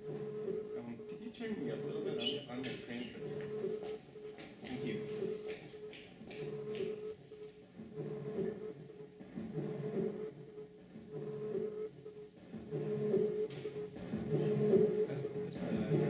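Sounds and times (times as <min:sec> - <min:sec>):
looper repeating tonal loop: 0:00.0 - 0:16.0.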